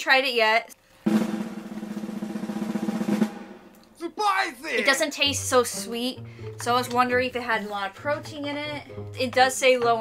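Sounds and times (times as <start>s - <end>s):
snare drum roll: 1.1s - 3.7s.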